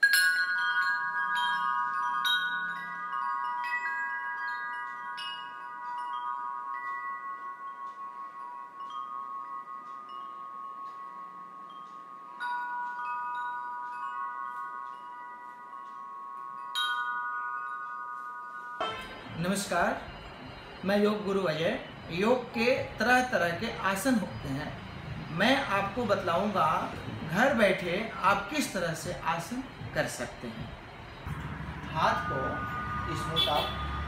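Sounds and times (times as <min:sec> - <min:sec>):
chimes ringing: 0:00.0 - 0:34.0.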